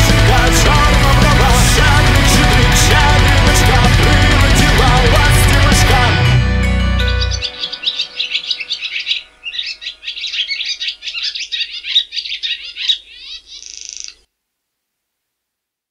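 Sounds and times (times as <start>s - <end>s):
birds chirping: 3.0s - 14.3s.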